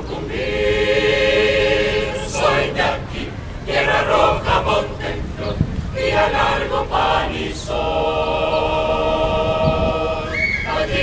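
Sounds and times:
mixed choir singing a cappella: 0.0s - 11.0s.

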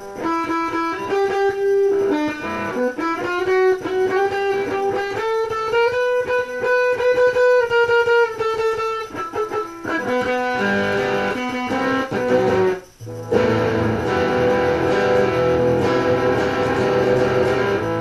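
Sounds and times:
electric guitar single-note line: 0.0s - 18.0s.

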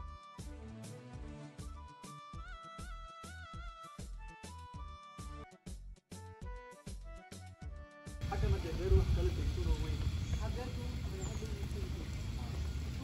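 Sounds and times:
plucked background music: 0.0s - 8.9s
faint voices: 8.2s - 13.0s
wind buffeting microphone: 8.2s - 13.0s.

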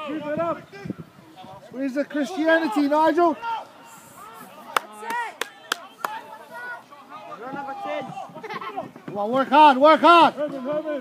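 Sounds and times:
distant shouting voices: 0.0s - 11.0s.

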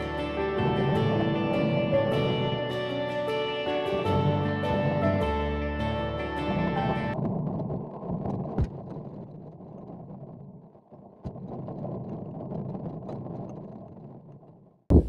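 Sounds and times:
guitar music: 0.0s - 7.2s
bike rolling noise: 0.0s - 15.0s
muffled wind: 0.0s - 15.0s.

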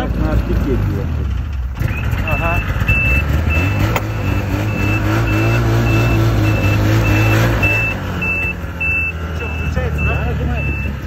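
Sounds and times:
snowmobile engine running: 0.0s - 11.0s
reverse warning buzzer beeps: 1.9s - 11.0s.

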